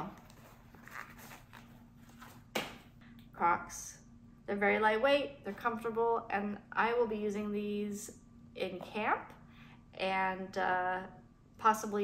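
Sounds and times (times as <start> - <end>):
fabric hat rustling: 0.0 - 2.5.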